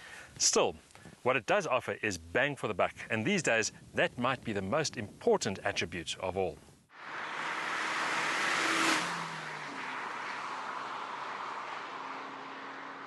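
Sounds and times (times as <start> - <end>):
car driving past: 6.9 - 13.0.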